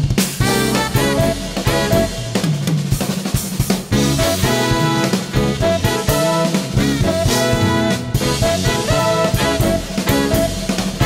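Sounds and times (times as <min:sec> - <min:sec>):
electric bass notes: 0:00.0 - 0:11.0
jazz fusion band playing live: 0:00.0 - 0:11.0
snare and bass drum hits: 0:00.0 - 0:11.0
keyboard and horn lines: 0:00.4 - 0:03.0, 0:03.9 - 0:11.0.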